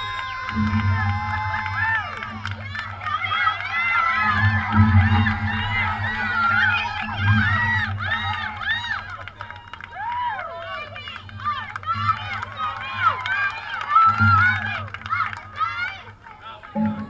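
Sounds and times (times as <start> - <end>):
girls cheering and chanting: 0.0 - 17.0.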